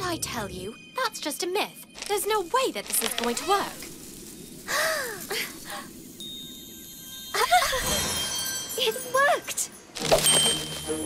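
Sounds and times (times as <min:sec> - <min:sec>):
magic shimmer sound effect: 0:01.9 - 0:11.0.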